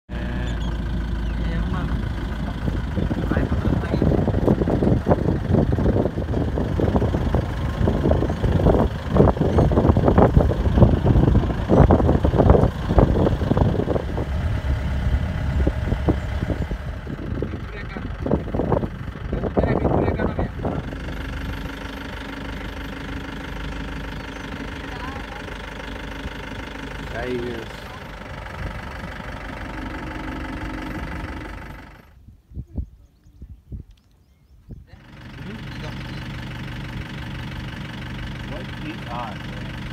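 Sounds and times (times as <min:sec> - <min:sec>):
jeep engine rumbling: 0:00.1 - 0:33.6, 0:34.2 - 0:39.9.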